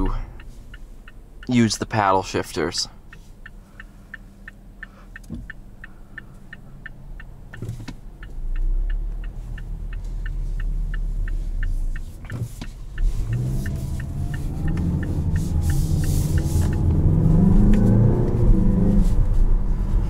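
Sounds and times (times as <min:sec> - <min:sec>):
car engine rumble: 0:00.0 - 0:20.0
turn signal clicking: 0:00.0 - 0:20.0.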